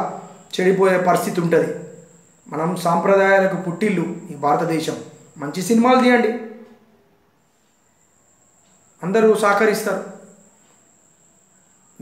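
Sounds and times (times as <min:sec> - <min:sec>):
faint high-pitched tone: 0:00.0 - 0:12.0.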